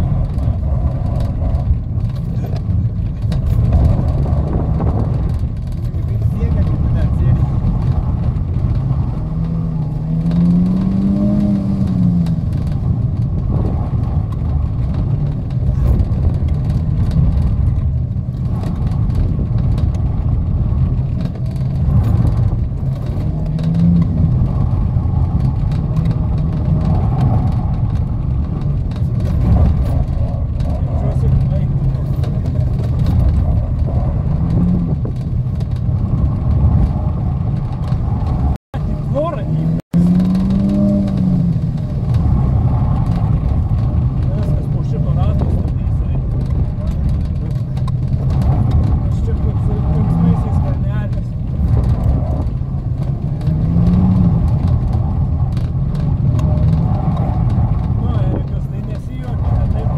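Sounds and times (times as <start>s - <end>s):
car engine revving: 0.0s - 59.9s.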